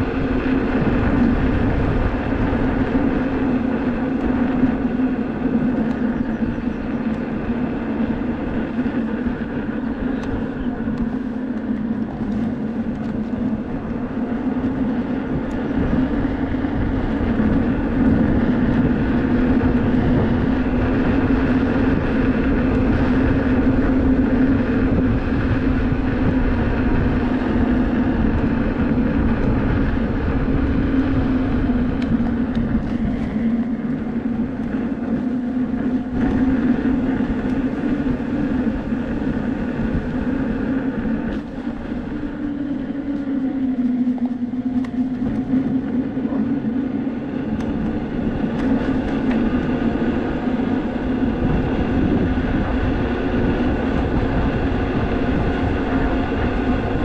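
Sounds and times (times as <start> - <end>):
electric motor and tyre hum: 0.0 - 57.0
wind rushing over microphone: 0.0 - 57.0.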